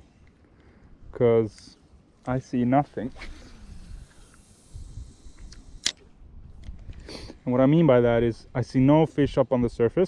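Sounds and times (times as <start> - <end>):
line running off reel: 3.1 - 6.1
sharp reel click: 3.5 - 6.1.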